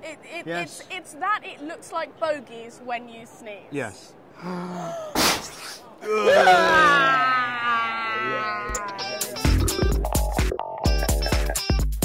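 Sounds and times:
person voicing low ooh: 0:06.0 - 0:10.0.

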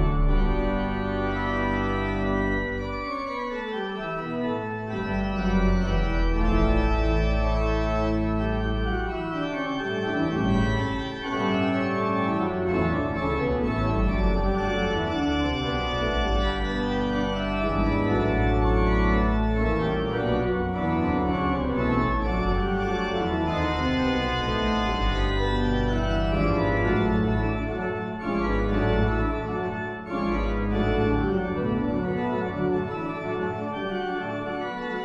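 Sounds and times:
church organ chords: 0:00.0 - 0:35.0.

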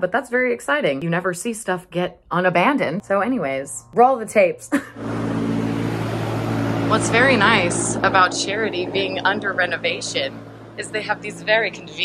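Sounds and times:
low electric fan hum: 0:04.8 - 0:12.0.

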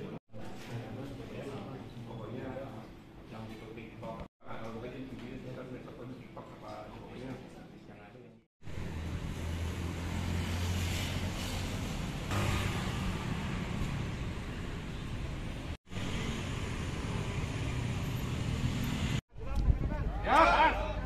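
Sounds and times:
street traffic passing: 0:08.6 - 0:19.2.

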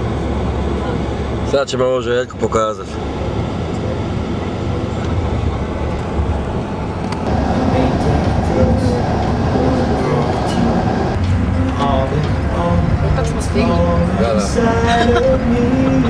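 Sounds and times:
bus engine and road rumble: 0:00.0 - 0:16.0
faint voices: 0:00.4 - 0:06.7, 0:07.3 - 0:16.0.

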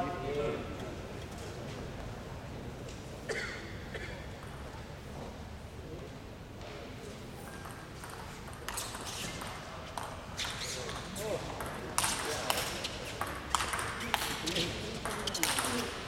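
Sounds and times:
table tennis ball clicking: 0:11.6 - 0:14.4.

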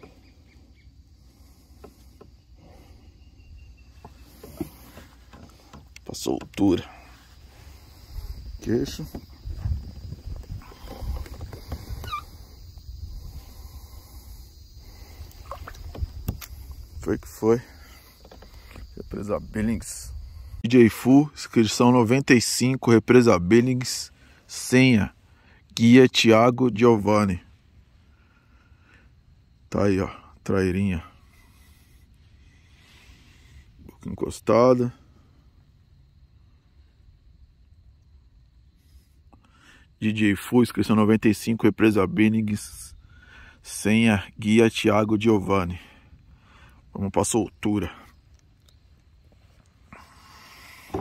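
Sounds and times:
short falling squeak: 0:10.9 - 0:12.5.

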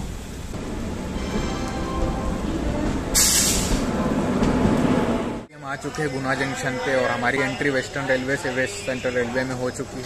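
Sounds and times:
train passing close by: 0:00.0 - 0:09.4.

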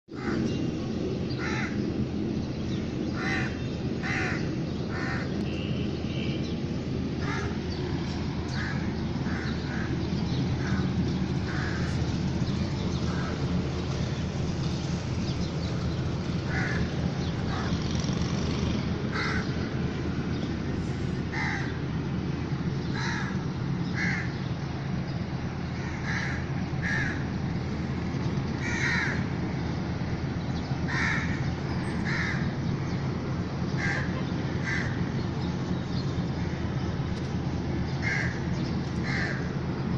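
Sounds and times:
crows cawing: 0:00.1 - 0:00.5, 0:01.4 - 0:01.8, 0:03.1 - 0:05.4, 0:07.2 - 0:07.6, 0:08.5 - 0:10.0, 0:10.6 - 0:12.1, 0:13.1 - 0:13.5, 0:16.5 - 0:18.2, 0:19.1 - 0:19.6, 0:21.3 - 0:21.9, 0:22.8 - 0:24.4, 0:25.7 - 0:27.3, 0:28.6 - 0:29.4, 0:30.9 - 0:32.6, 0:33.7 - 0:35.1, 0:38.0 - 0:39.6.

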